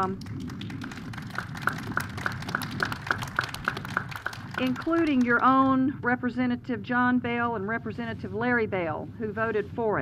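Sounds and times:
hands clapping nearby: 0.0 - 5.4
faint scattered clapping: 0.0 - 5.5.

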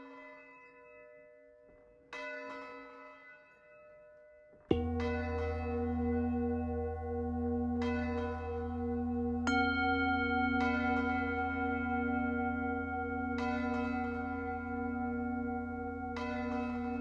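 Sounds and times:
deep wavering bell tone: 4.6 - 17.0
struck bell ringing: 4.7 - 17.0.

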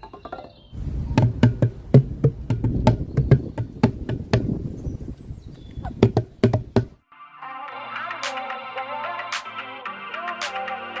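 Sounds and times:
booming hand drum hits: 1.2 - 4.5.

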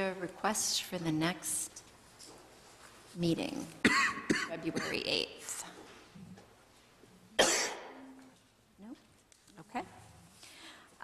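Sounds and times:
person coughing: 3.8 - 5.1, 7.4 - 8.1.

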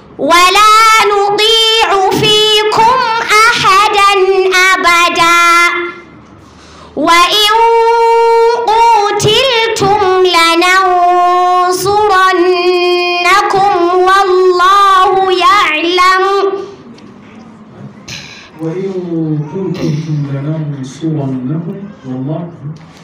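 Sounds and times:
girl chanting into a microphone: 0.2 - 6.1, 7.0 - 16.8.

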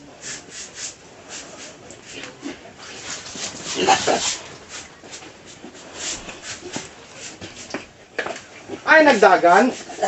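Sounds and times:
scrub brush scraping: 0.2 - 10.0
pigs grunting: 3.6 - 4.6.

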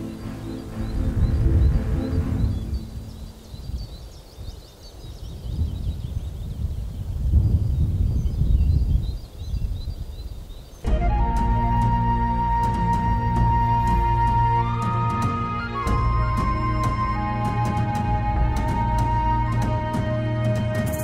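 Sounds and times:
background music: 0.0 - 3.4, 10.8 - 21.0
small birds chirping: 0.0 - 10.9.

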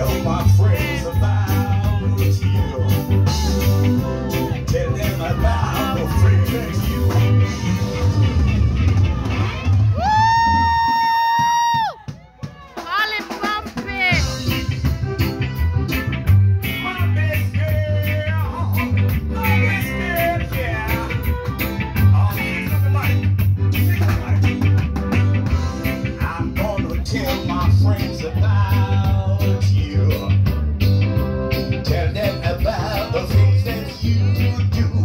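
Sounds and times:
reggae band playing: 0.0 - 35.0
quick rising whoops: 9.0 - 12.8.

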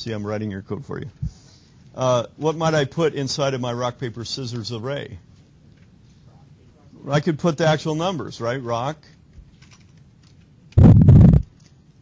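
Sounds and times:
rush of noise near microphone: 10.8 - 11.5.

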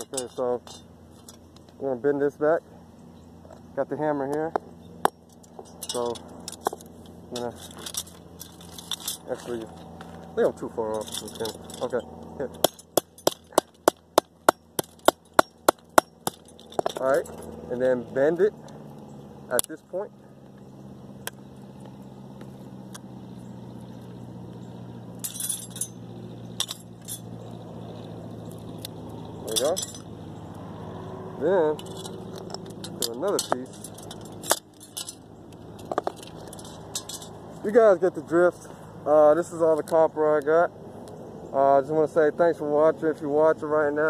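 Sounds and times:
light metal clinks: 0.0 - 1.8, 3.1 - 19.9, 24.1 - 30.5, 31.5 - 37.8
hammer striking copper pipe: 12.6 - 17.0.

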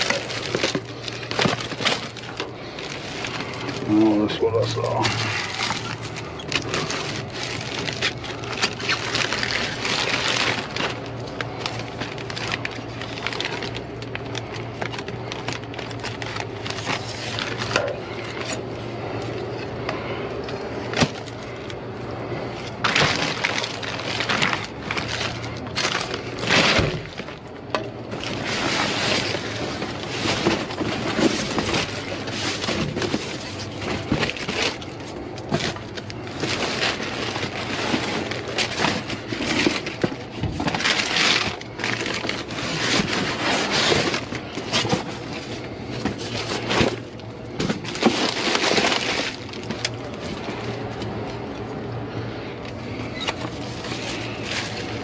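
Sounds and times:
cardboard shifting: 0.0 - 55.0
plastic bags crinkling: 0.0 - 55.0
steady low hum: 0.0 - 55.0.

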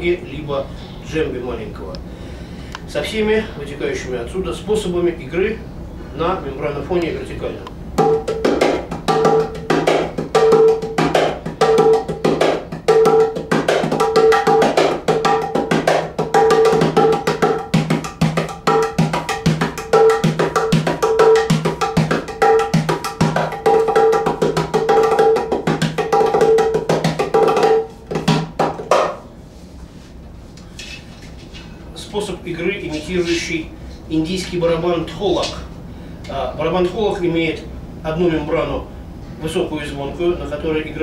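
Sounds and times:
hand drum playing: 8.0 - 29.2.

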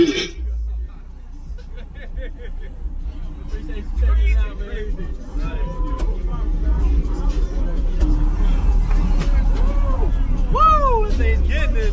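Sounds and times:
heavy subwoofer bass rumble: 0.0 - 11.9
voices: 0.0 - 11.9.

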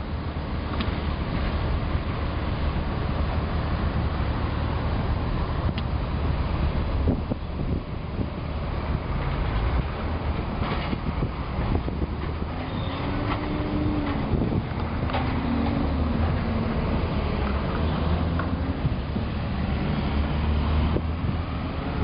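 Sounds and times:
distant road traffic: 0.0 - 22.0
wind on microphone: 4.9 - 22.0.

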